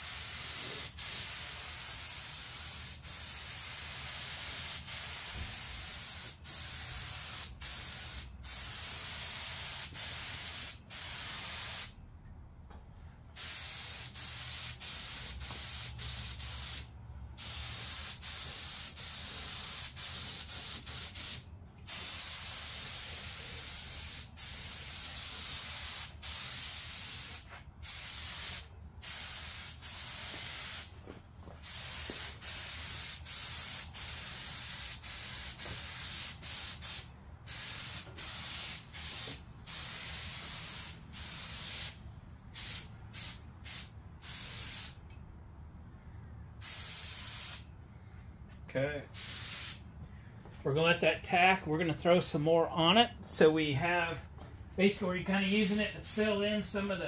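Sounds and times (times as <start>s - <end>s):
paint spray gun hissing: 0.0s - 12.0s, 13.4s - 45.0s, 46.6s - 47.6s, 49.2s - 49.8s, 55.3s - 56.9s.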